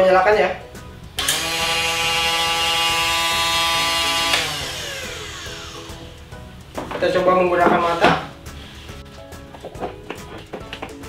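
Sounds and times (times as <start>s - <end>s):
grass trimmer motor whining: 1.2s - 6.2s.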